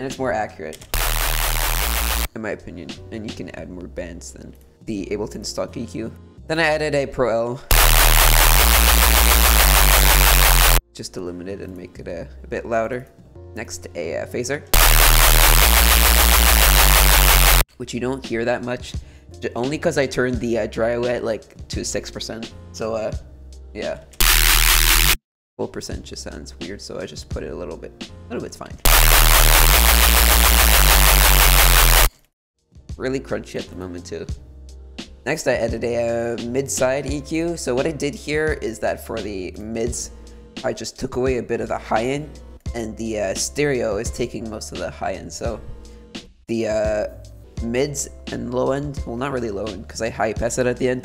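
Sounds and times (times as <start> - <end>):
distorted synth bass note: 1.0 - 2.3, 7.7 - 10.8, 14.8 - 17.6, 24.2 - 25.2, 28.9 - 32.1.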